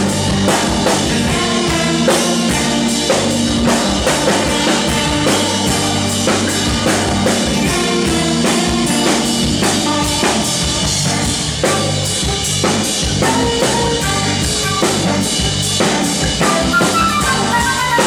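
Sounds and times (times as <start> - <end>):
falling lead guitar notes: 0.0 - 18.0
live rock band playing: 0.0 - 18.0.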